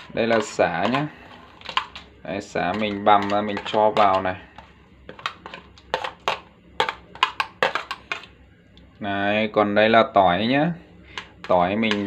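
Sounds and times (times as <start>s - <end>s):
lemongrass tapping into metal pot: 2.7s - 4.3s.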